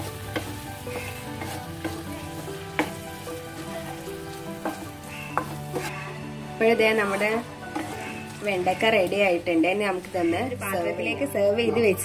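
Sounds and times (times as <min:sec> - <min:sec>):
food sizzling in frying pan: 0:00.0 - 0:12.0
spatula knocking against pan: 0:04.6 - 0:06.0, 0:07.7 - 0:08.9.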